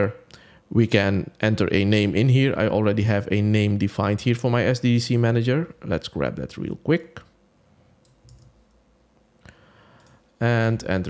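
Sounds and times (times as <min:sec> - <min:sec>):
computer mouse clicks: 0:08.0 - 0:08.8, 0:10.0 - 0:10.2.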